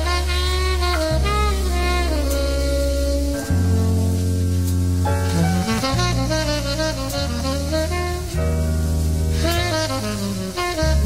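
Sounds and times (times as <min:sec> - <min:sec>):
rhythm section low notes: 0:00.0 - 0:11.0
tenor saxophone melody: 0:00.0 - 0:11.0.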